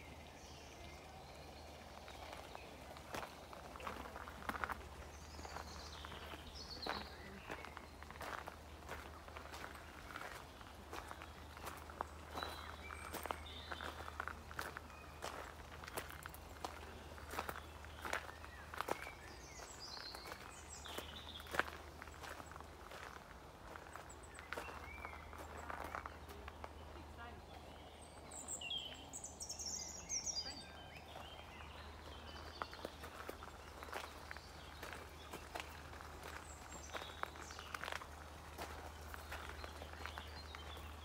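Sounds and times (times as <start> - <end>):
footsteps on gravel: 1.7 - 29.1, 30.4 - 41.0.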